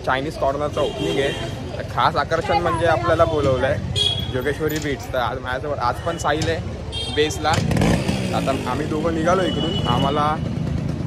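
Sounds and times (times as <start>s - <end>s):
street traffic rumble: 0.0s - 11.0s
motorcycle engine running: 7.0s - 11.0s.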